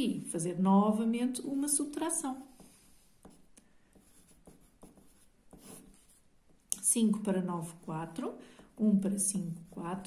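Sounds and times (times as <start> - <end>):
pencil scratching on paper: 2.4 - 10.0.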